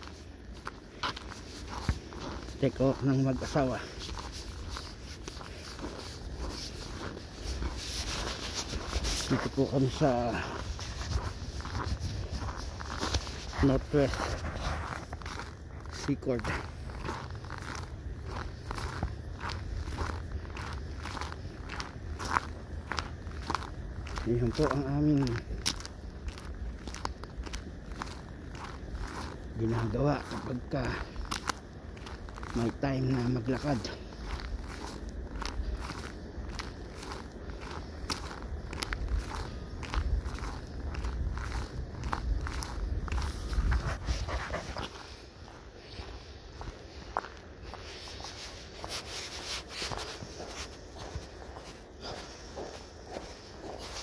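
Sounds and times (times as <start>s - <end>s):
footsteps on packed snow: 0.0s - 54.0s.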